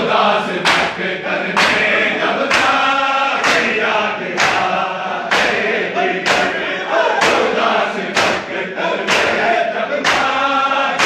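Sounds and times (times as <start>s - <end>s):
group of men chanting: 0.0s - 11.0s
chest beating slaps: 0.6s - 5.6s, 6.2s - 9.4s.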